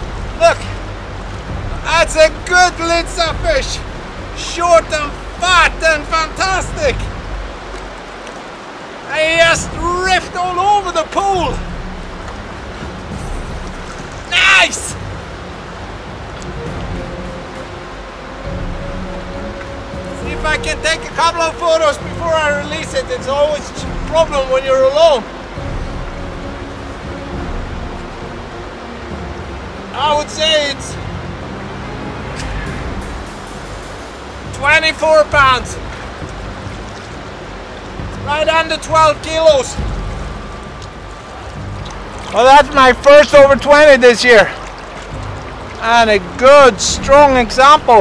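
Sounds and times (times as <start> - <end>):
river rushing through rapids: 0.0 - 48.0.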